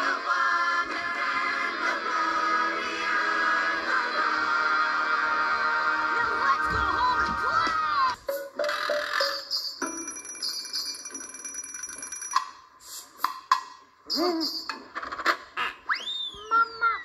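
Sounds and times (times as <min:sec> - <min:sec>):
high beeping tones: 0:08.2 - 0:12.5.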